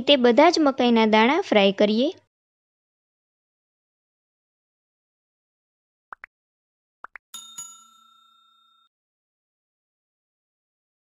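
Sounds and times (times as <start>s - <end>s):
bell ringing: 7.3s - 8.9s.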